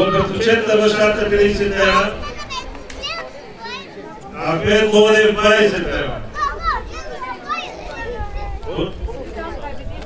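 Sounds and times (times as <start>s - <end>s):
crowd chatter: 0.0s - 10.0s
children calling out: 6.2s - 8.7s.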